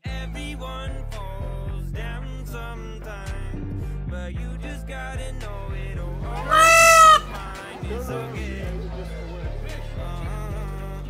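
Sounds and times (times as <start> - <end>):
pop song with guitar: 0.0 - 11.0
peacock call: 6.4 - 7.4.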